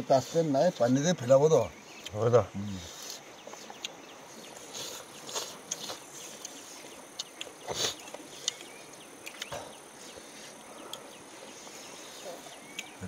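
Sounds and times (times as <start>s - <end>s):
insects buzzing: 0.0s - 13.0s.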